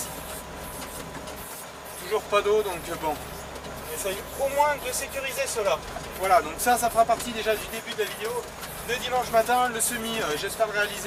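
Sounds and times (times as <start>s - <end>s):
tractor diesel engine droning: 0.0s - 11.0s.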